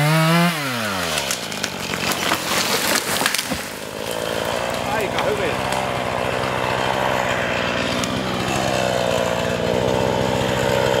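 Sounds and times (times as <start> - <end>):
chainsaw idling: 0.0 - 11.0.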